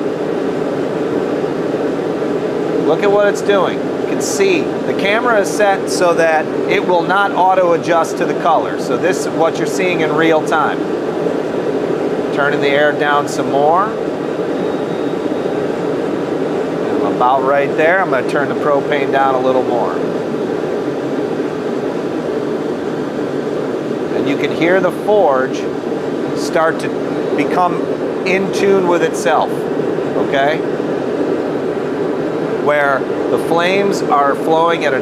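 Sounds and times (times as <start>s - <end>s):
forge burner rushing: 0.0s - 35.0s
person speaking: 2.8s - 10.9s, 12.3s - 14.0s, 16.9s - 20.1s, 24.1s - 25.7s, 26.3s - 30.7s, 32.6s - 35.0s.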